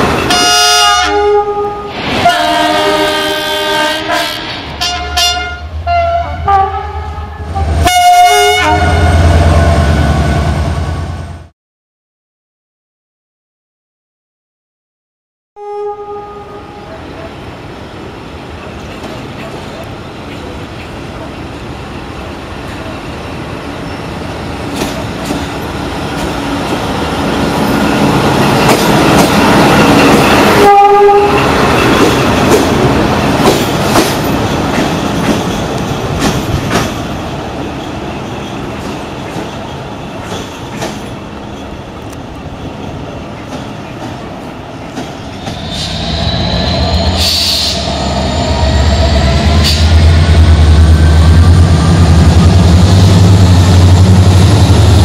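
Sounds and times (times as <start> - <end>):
train horn blast: 0.3 - 10.6, 15.6 - 17.0, 30.5 - 31.6
locomotive engine and wheel clatter: 18.3 - 55.0.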